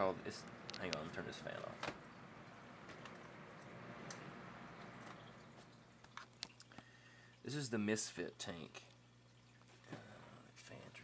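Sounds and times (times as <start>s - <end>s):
electric fan winding down: 0.0s - 6.0s
steady low hum: 0.0s - 11.0s.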